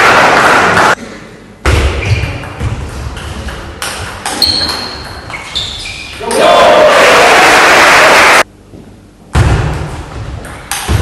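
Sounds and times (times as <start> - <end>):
spectators applauding loudly: 6.4 - 8.5.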